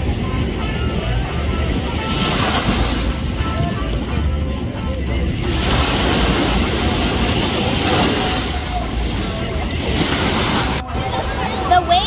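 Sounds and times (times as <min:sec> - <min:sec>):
faint voices: 0:00.0 - 0:12.0
ocean waves and surf: 0:00.0 - 0:12.0
wind rumbling on microphone: 0:00.0 - 0:12.0.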